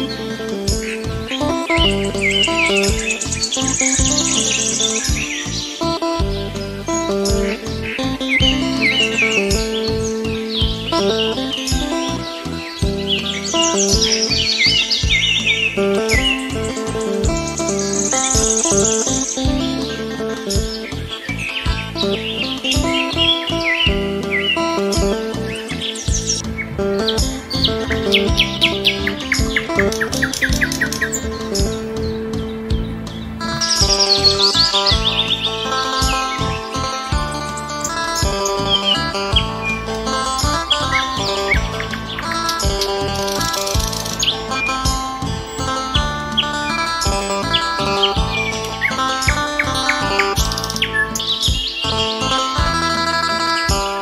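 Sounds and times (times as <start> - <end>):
instrumental music with steady beat: 0.0 - 54.0
songbird chirps and trills: 0.0 - 54.0.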